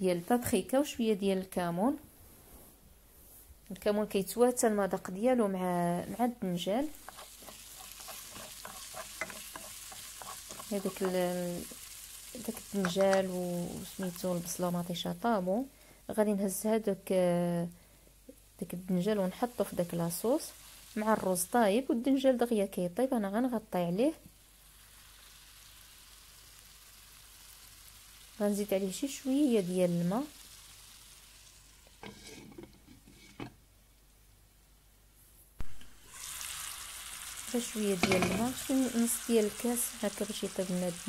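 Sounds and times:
woman's voice: 0.0 - 2.0, 3.7 - 7.0, 10.7 - 11.8, 12.4 - 17.8, 18.6 - 24.2, 28.4 - 30.3, 37.5 - 41.0
vegetables sizzling in oil: 3.8 - 17.5, 18.2 - 33.4, 35.6 - 41.0
spatula scraping pan: 6.9 - 11.8, 31.9 - 33.6.

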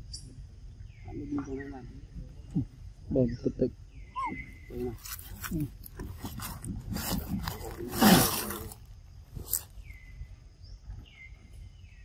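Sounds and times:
sharp crackles: 5.0 - 9.7.

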